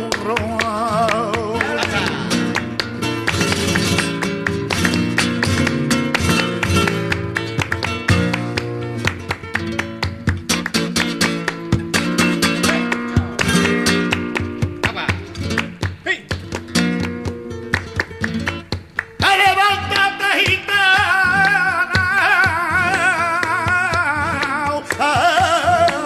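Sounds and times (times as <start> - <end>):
flamenco guitar strumming: 0.0 - 26.0.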